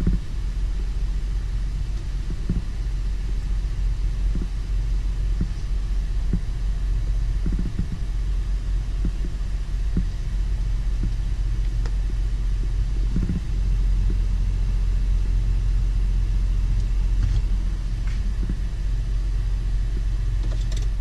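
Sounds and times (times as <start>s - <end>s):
low cabin rumble: 0.0s - 21.0s.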